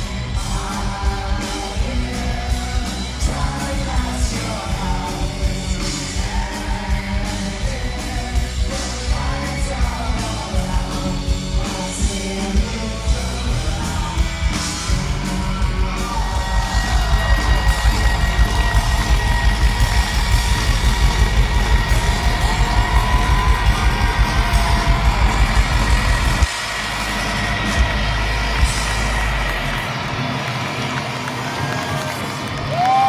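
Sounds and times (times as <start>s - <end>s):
driving drum beat: 0.0s - 30.6s
live rock band playing: 0.0s - 33.0s
crowd cheering: 13.8s - 33.0s.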